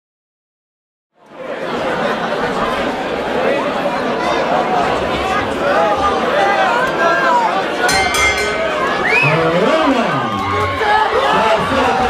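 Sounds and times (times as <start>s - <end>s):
crowd chatter: 1.2s - 12.0s
crowd shouting: 3.4s - 12.0s
boxing ring bell: 7.9s - 9.6s.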